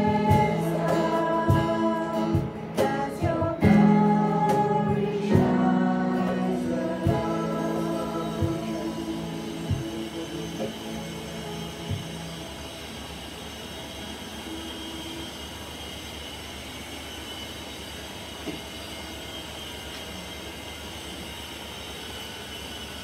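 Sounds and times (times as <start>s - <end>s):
acoustic guitar and keyboard chord: 0.0s - 14.2s
steady low hum: 0.0s - 23.0s.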